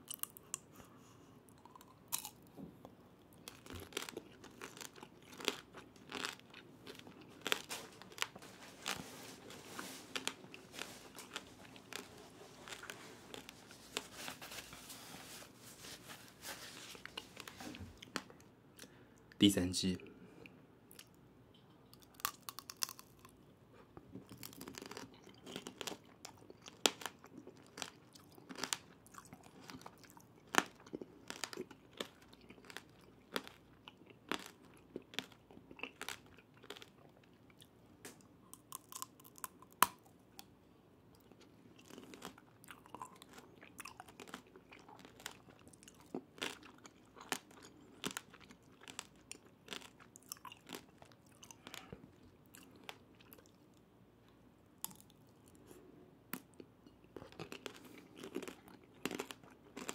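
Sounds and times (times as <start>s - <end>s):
chewing: 0.0s - 9.0s, 9.7s - 14.1s, 21.9s - 23.4s, 24.0s - 37.7s, 41.1s - 53.6s, 56.4s - 59.9s.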